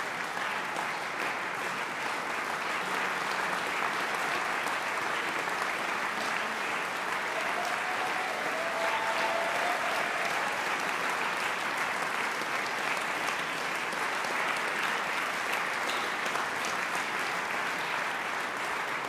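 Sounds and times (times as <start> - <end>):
audience applauding: 0.0 - 19.0.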